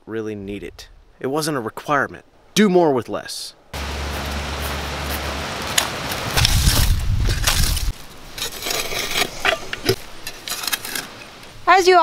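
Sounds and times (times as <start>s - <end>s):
wind buffeting microphone: 4.4s - 8.0s
shovel scraping in ash and dirt: 5.1s - 11.3s.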